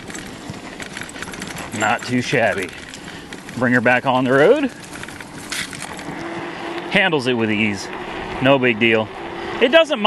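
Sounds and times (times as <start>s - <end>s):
wind and tyre rush: 0.0s - 10.0s.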